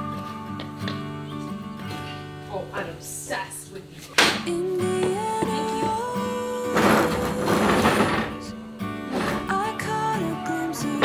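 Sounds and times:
acoustic guitar music: 0:00.0 - 0:11.0
wooden lounger scraping on bricks: 0:06.7 - 0:09.7.

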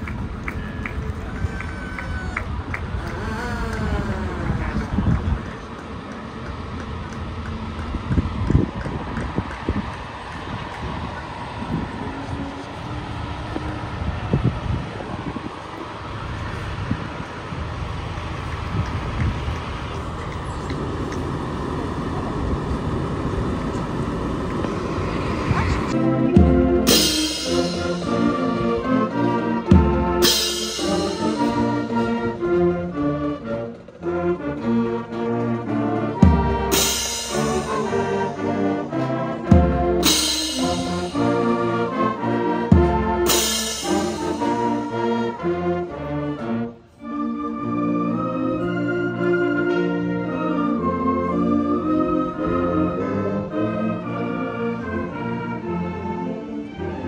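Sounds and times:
truck engines rumbling: 0:00.0 - 0:57.0
brass marching band playing: 0:25.9 - 0:57.0
loud cymbal crashes: 0:26.8 - 0:28.6, 0:29.8 - 0:32.0, 0:36.6 - 0:38.4, 0:39.6 - 0:41.7, 0:42.7 - 0:45.0.

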